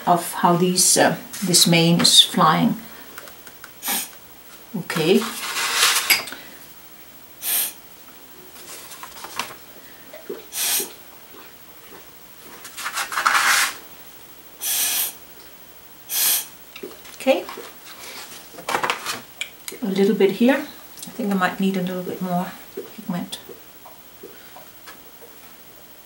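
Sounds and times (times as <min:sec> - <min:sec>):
breath blown through straw: 0:14.6 - 0:15.2, 0:16.1 - 0:16.5.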